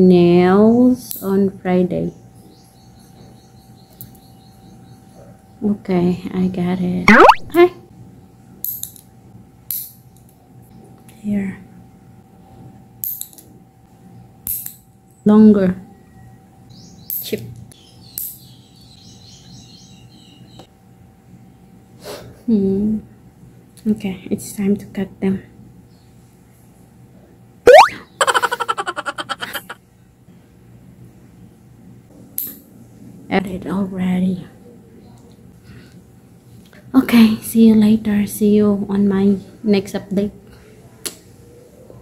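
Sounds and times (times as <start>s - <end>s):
rising boing swoop: 7.1s - 7.6s, 27.7s - 28.7s.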